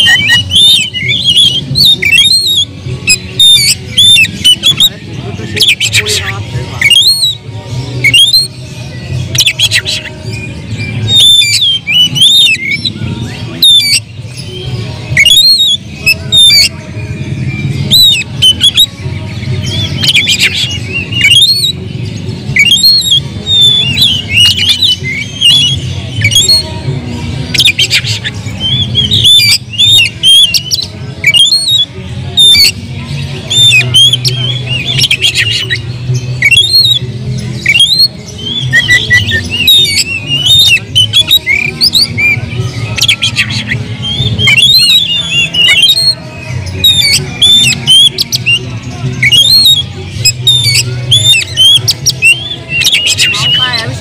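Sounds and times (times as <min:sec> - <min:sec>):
bird singing whistles: 0:00.0 - 0:04.9, 0:06.8 - 0:07.4, 0:08.0 - 0:08.5, 0:09.3 - 0:16.7, 0:17.4 - 0:19.0, 0:19.6 - 0:21.8, 0:22.5 - 0:26.7, 0:27.5 - 0:32.8, 0:33.5 - 0:37.0, 0:37.6 - 0:48.6, 0:49.2 - 0:54.0.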